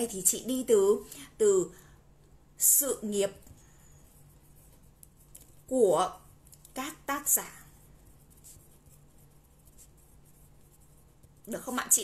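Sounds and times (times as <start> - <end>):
pen scratching on paper: 4.0 - 12.0.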